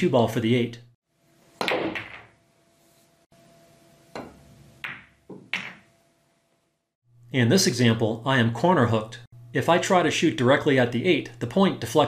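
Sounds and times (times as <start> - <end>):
pool balls knocking: 1.6 - 2.4, 4.2 - 5.9.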